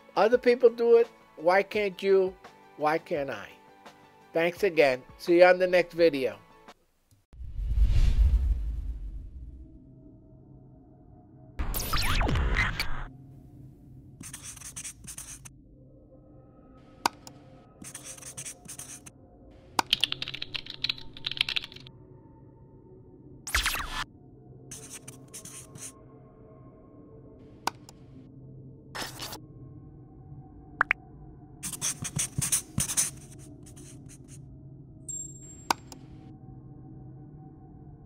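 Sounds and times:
marker scratching on surface: 0:14.2 - 0:15.5, 0:17.8 - 0:19.1, 0:24.7 - 0:25.9, 0:29.0 - 0:29.4, 0:31.6 - 0:34.4.

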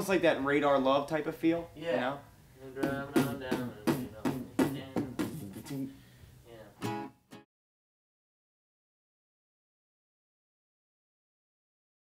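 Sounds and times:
acoustic guitar strumming: 0:02.8 - 0:06.0, 0:06.8 - 0:07.4.

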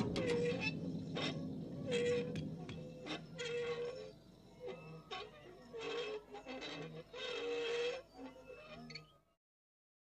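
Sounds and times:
buzzy pitched spacecraft tone: 0:00.0 - 0:06.1.

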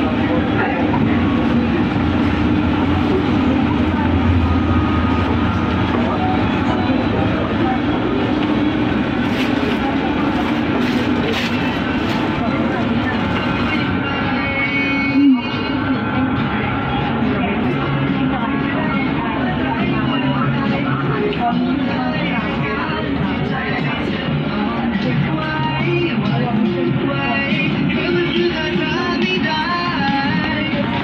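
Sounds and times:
steady hum: 0:00.0 - 0:25.2
indistinct voices: 0:00.0 - 0:31.0.

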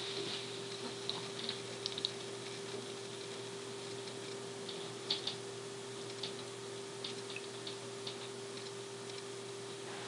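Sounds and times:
steady hum and hiss: 0:00.0 - 0:10.0.

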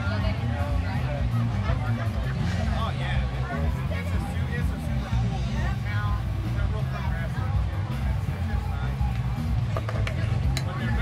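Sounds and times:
loud music with heavy bass: 0:00.0 - 0:11.0
voices talking: 0:00.0 - 0:11.0.

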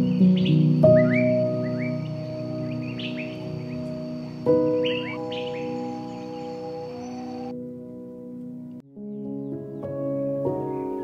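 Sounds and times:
birds chirping: 0:00.0 - 0:07.6
soft piano chords: 0:00.0 - 0:11.0.

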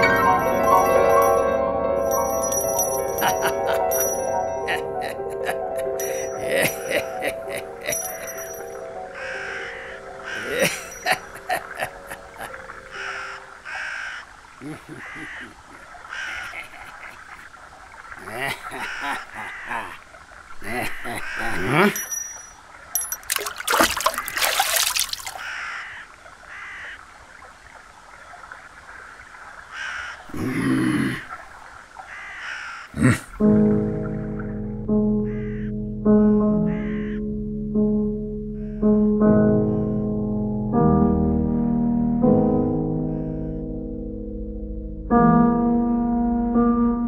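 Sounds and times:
crows cawing: 0:09.0 - 0:22.0, 0:24.0 - 0:27.2, 0:29.6 - 0:31.4, 0:32.0 - 0:33.0, 0:35.3 - 0:35.7, 0:36.6 - 0:37.3
harsh rasping call: 0:09.2 - 0:17.6, 0:18.2 - 0:22.1.

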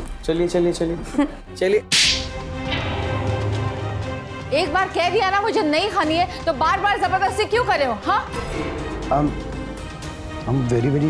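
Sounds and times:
sharp slap: 0:01.9 - 0:03.4
dramatic music sting: 0:02.4 - 0:05.7
low rumble: 0:02.4 - 0:06.6.

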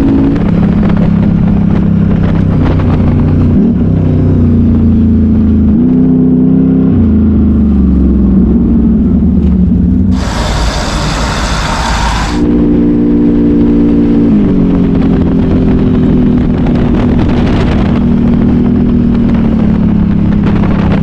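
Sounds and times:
engine running: 0:07.4 - 0:13.3
loud rush of noise: 0:10.1 - 0:12.5.

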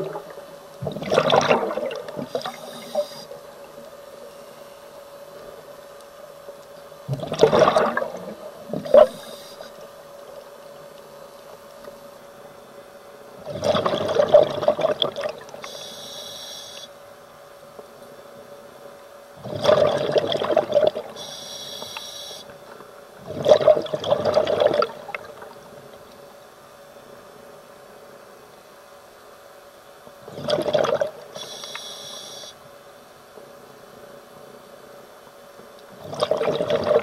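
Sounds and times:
exhaled bubbles gushing: 0:00.0 - 0:03.0, 0:07.1 - 0:09.2, 0:13.4 - 0:15.6, 0:19.4 - 0:21.2, 0:23.2 - 0:25.6, 0:30.2 - 0:31.2, 0:36.0 - 0:37.0
faint steady hum: 0:00.0 - 0:37.0
regulator inhalation hisses: 0:15.7 - 0:16.9, 0:21.2 - 0:22.5, 0:31.4 - 0:32.6.

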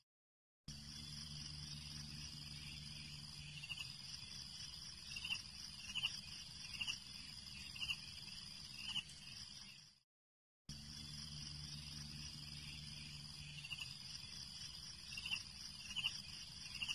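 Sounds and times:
insect chirring: 0:00.7 - 0:10.0, 0:10.7 - 0:16.9.

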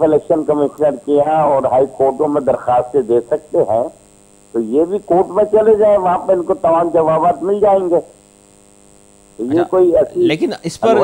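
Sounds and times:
man speaking: 0:00.0 - 0:03.9, 0:04.6 - 0:08.1, 0:09.4 - 0:11.0
low electrical mains hum: 0:00.0 - 0:11.0.

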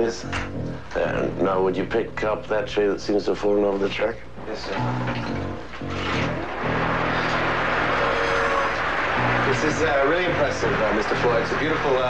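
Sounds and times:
background music: 0:00.0 - 0:03.1, 0:04.6 - 0:12.0.

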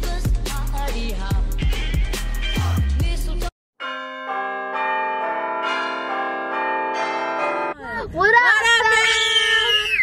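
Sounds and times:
bell chimes jingle: 0:03.8 - 0:07.8.

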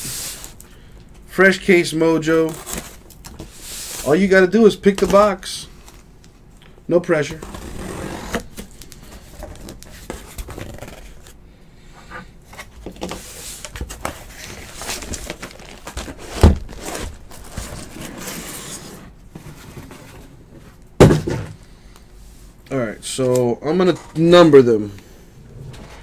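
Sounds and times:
cardboard boxes rustling: 0:07.3 - 0:11.4, 0:12.4 - 0:21.6
loud thumps: 0:21.0 - 0:21.6.

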